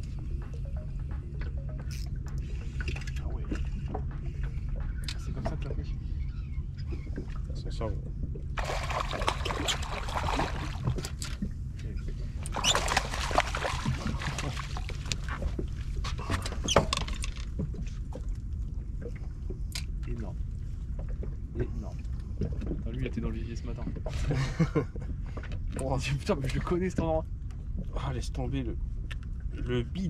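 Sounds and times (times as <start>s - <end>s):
steady low rumble: 0.0s - 16.6s, 17.4s - 30.0s
water splashing: 8.6s - 11.5s, 12.5s - 16.0s.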